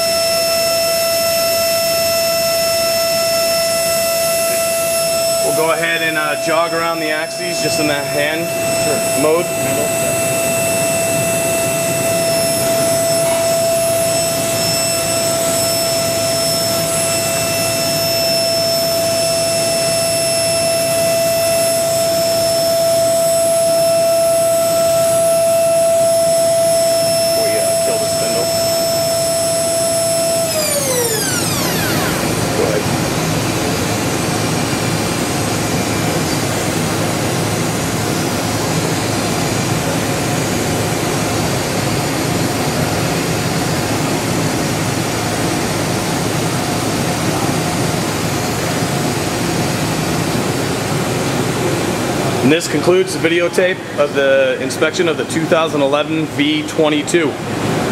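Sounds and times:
machine noise: 0:00.0 - 0:57.9
machine spindle whine: 0:00.0 - 0:57.9.

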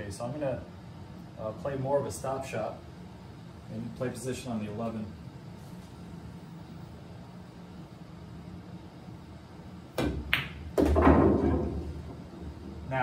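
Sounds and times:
pool balls clicking: 0:09.9 - 0:12.8
cue tip hitting ball: 0:10.0 - 0:12.0.

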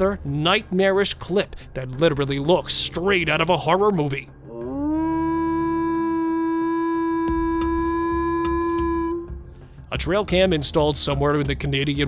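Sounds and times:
wolf howling: 0:04.5 - 0:09.3.

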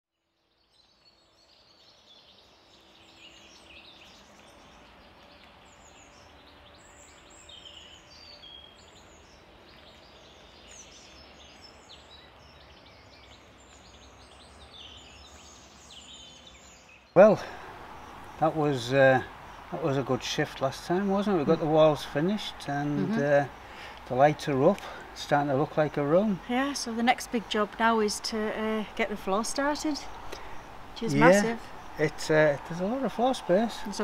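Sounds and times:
birds chirping: 0:00.4 - 0:34.0
low background hum: 0:02.7 - 0:34.0
man's voice: 0:19.8 - 0:23.5, 0:31.1 - 0:33.9.

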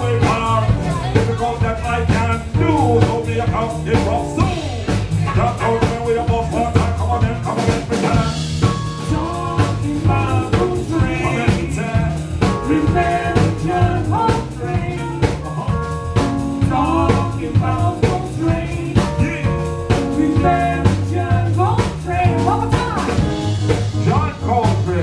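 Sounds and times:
drum kit beat: 0:00.0 - 0:25.0
jazz hip-hop band playing: 0:00.0 - 0:25.0.

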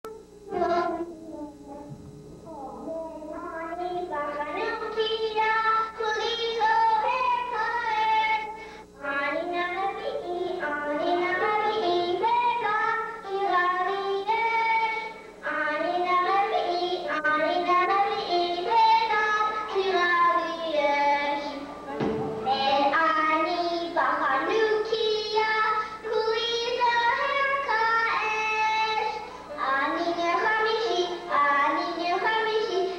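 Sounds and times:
children singing into microphones: 0:15.8 - 0:32.9.

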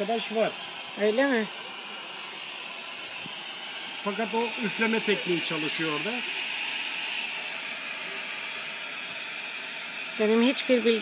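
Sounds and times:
gas torch flame hissing: 0:00.0 - 0:11.0.

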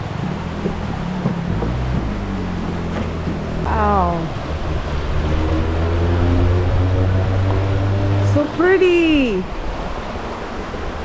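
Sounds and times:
river running over rocks: 0:00.0 - 0:11.0
voice with falling pitch: 0:03.6 - 0:09.5.

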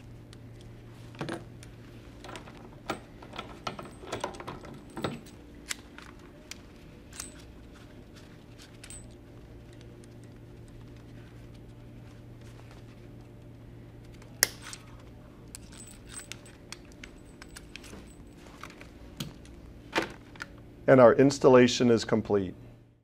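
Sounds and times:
steady low hum: 0:00.0 - 0:23.0
metal clicks and rattles: 0:02.2 - 0:06.2.

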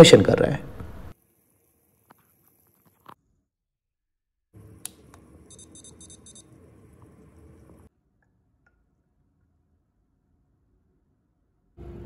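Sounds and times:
thermometer short high beeps: 0:05.5 - 0:06.4.

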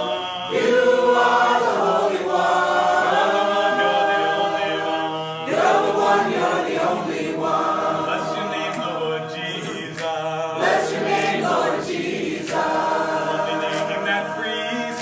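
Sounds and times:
congregation singing unaccompanied: 0:00.0 - 0:15.0.

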